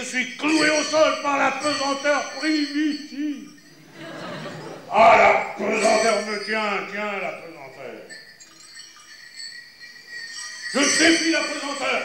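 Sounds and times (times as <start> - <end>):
small bells jingling: 0.0 - 12.0.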